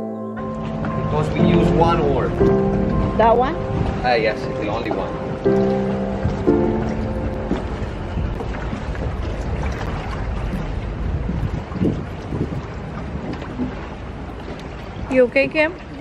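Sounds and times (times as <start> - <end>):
held musical notes: 0.0 - 9.6
water noise: 0.0 - 16.0
wind rumble on microphone: 0.4 - 16.0.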